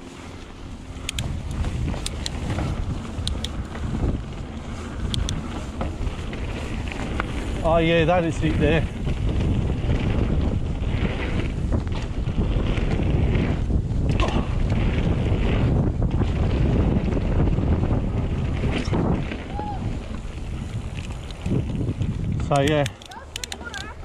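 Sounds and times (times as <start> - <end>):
bike tyres rumbling on dirt: 0.0 - 24.0
wind rushing over microphone: 0.0 - 24.0.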